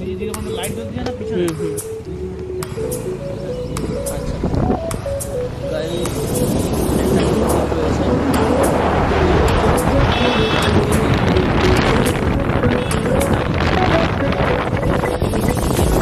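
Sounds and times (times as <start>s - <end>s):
motorcycle road noise: 0.0s - 16.0s
music melody: 0.0s - 16.0s
wind noise: 4.3s - 5.0s, 6.1s - 16.0s.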